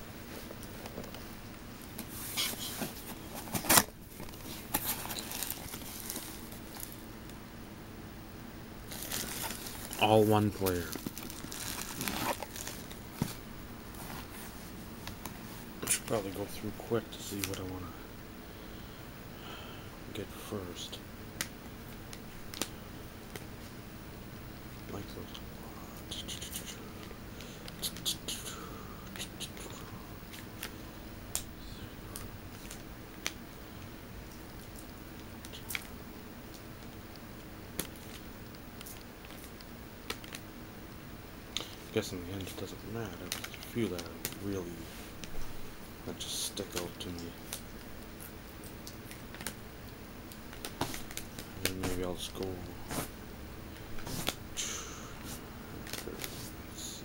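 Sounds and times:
low background hum: 0:00.0 - 0:57.0
plastic-sleeved cards rustling: 0:02.0 - 0:07.0, 0:08.9 - 0:17.8, 0:32.1 - 0:33.4, 0:37.8 - 0:40.4, 0:41.6 - 0:45.6, 0:50.3 - 0:53.1, 0:55.2 - 0:56.6.

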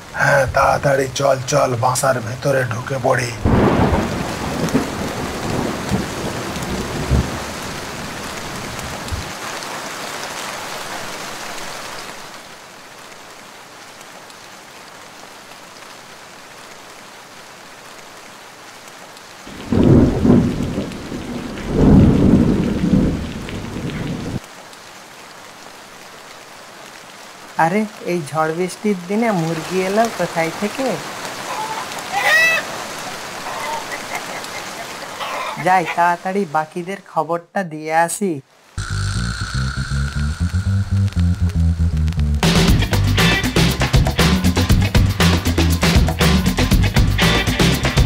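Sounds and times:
heavy rain: 0:00.0 - 0:37.1, 0:38.4 - 0:48.0
loud thunderclaps: 0:03.4 - 0:09.3, 0:19.5 - 0:24.4
rolling thunder: 0:03.4 - 0:09.3, 0:19.5 - 0:24.4.

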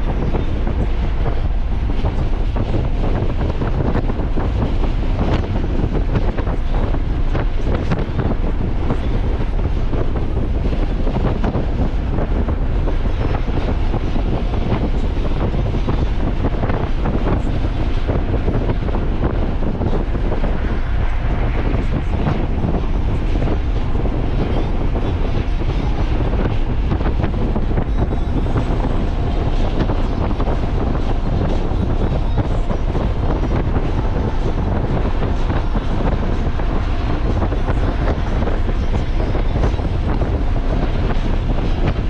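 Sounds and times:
car road and wind rumble: 0:00.0 - 0:42.0.

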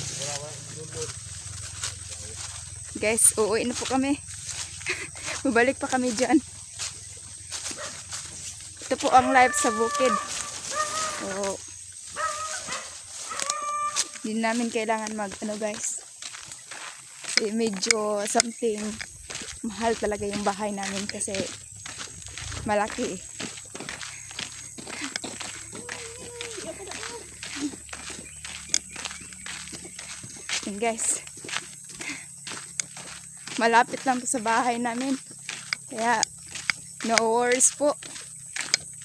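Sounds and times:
footsteps on dirt road: 0:00.0 - 0:39.0
high-pitched animal calls: 0:08.8 - 0:14.3, 0:24.1 - 0:30.2.

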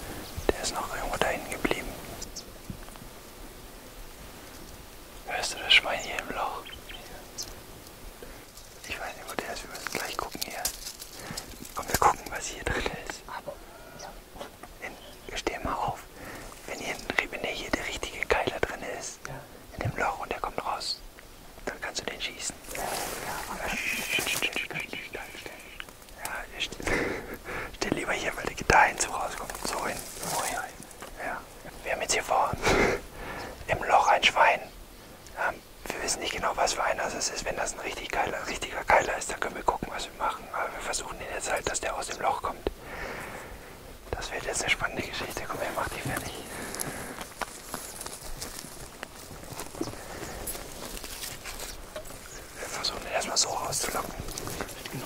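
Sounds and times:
men whispering: 0:00.0 - 0:02.5, 0:05.2 - 0:07.6, 0:08.2 - 0:55.0.

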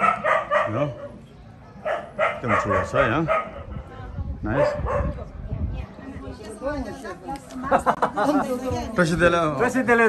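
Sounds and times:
dog barking: 0:00.0 - 0:01.2, 0:01.8 - 0:03.8, 0:04.5 - 0:05.2.

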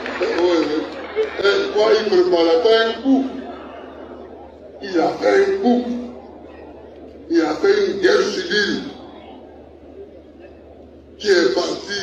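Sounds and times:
man speaking: 0:00.1 - 0:03.5, 0:04.8 - 0:06.1, 0:07.3 - 0:09.0, 0:11.2 - 0:12.0.

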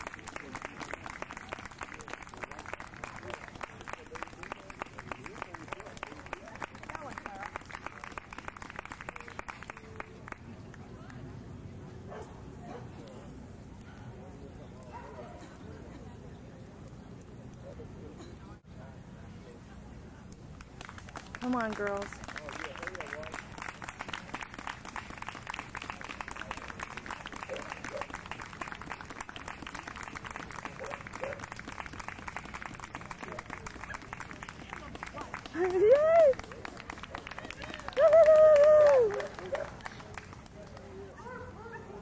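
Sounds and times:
crowd clapping: 0:00.0 - 0:11.2, 0:20.6 - 0:41.1
dog barking: 0:30.8 - 0:31.4.

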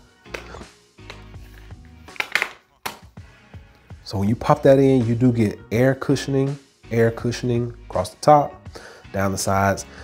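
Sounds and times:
soft background music: 0:00.0 - 0:10.0
phone case clicks and knocks: 0:02.2 - 0:03.0.

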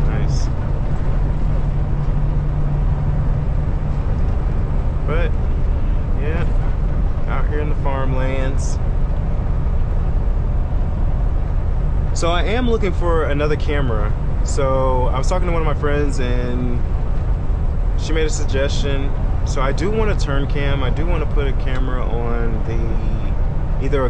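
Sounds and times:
low hum: 0:00.0 - 0:24.0
truck engine and road drone: 0:00.0 - 0:24.0.

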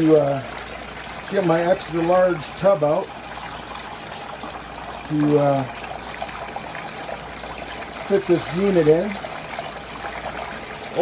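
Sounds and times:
water rushing and splashing: 0:00.0 - 0:11.0.

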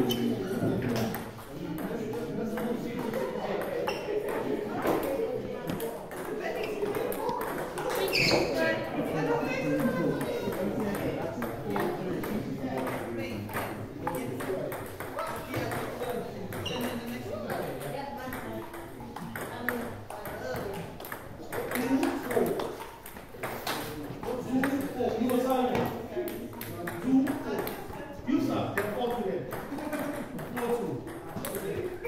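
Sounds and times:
background chatter of voices: 0:00.0 - 0:32.0
table tennis balls clicking: 0:00.1 - 0:08.6, 0:09.6 - 0:32.0.

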